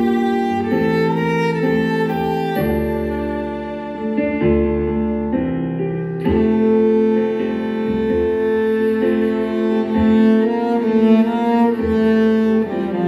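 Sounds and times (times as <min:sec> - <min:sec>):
cello playing slow melody: 0:00.0 - 0:13.0.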